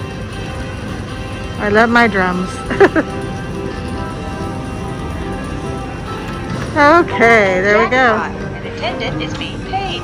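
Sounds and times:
slot machine win music: 0.0 - 10.0.

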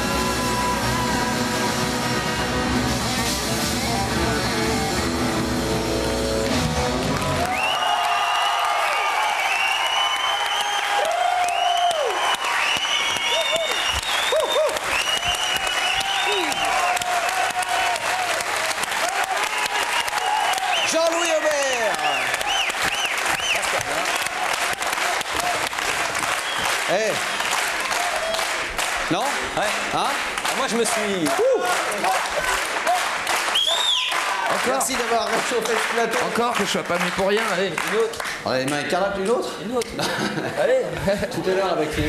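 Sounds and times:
rock band playing: 0.0 - 7.5
audience applauding: 6.1 - 40.4
audience shouting: 7.1 - 26.2, 30.6 - 35.0
short high whistles: 12.4 - 16.7, 33.5 - 34.2.

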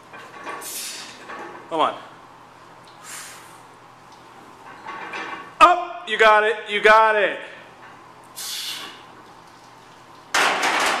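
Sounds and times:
weight plates rattling: 10.4 - 11.0.

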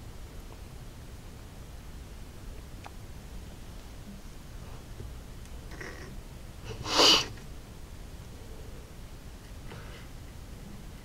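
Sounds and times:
person sneezing: 6.7 - 7.4.

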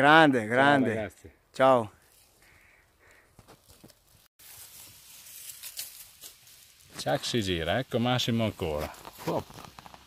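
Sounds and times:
dry leaves rustling and crackling: 3.6 - 10.0.

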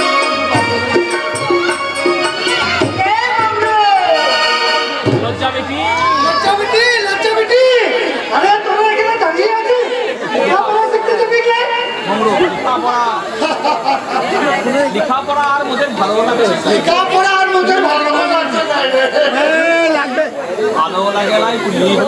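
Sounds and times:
actors' voices in dialogue: 2.8 - 22.0.

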